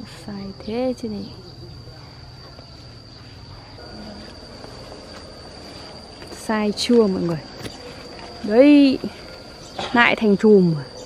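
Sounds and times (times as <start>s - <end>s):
high-pitched insect trill: 0.0s - 11.0s.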